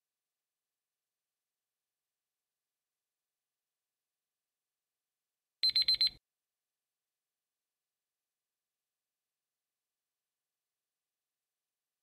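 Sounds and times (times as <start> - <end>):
high-pitched timer beeps: 5.6 - 6.2.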